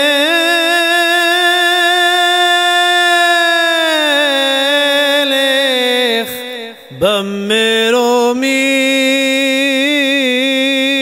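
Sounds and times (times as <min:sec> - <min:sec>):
man singing a long note: 0:00.0 - 0:11.0.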